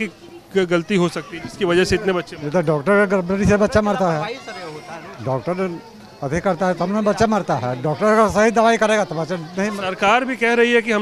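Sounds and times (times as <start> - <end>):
elderly man speaking: 0.0 - 4.3.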